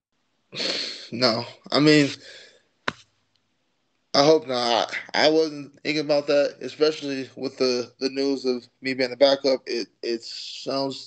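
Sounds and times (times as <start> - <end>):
breathy sigh: 0.6 - 1.2, 2.1 - 2.6
man speaking: 0.6 - 2.5, 4.2 - 11.0.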